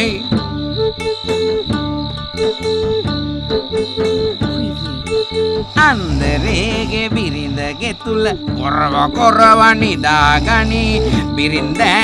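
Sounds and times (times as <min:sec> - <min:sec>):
crickets chirping: 0:00.0 - 0:12.0
instrumental background music: 0:00.0 - 0:12.0.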